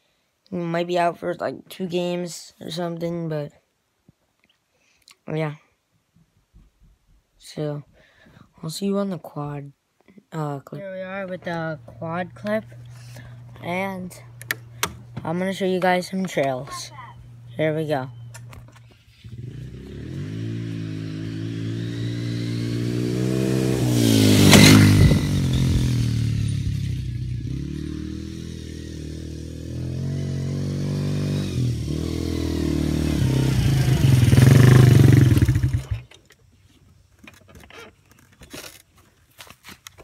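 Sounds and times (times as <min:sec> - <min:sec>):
quad engine revving: 0:19.2 - 0:36.1.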